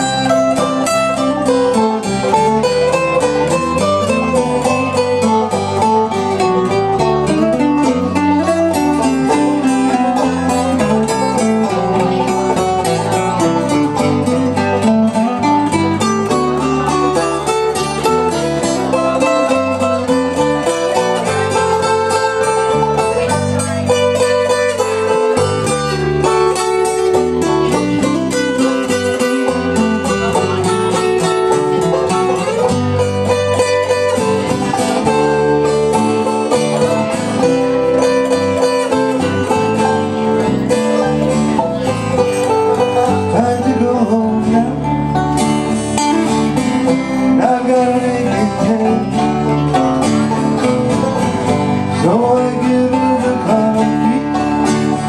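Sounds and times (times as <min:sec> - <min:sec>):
acoustic band playing: 0:00.0 - 0:55.0.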